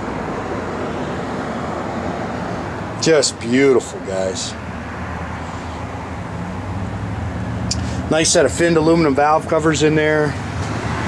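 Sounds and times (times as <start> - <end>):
vehicle rumble: 0.0 - 11.0.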